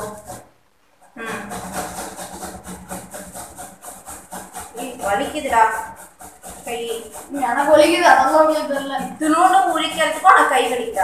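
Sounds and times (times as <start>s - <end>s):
woman speaking: 1.2s - 1.6s, 4.8s - 6.0s, 6.7s - 11.0s.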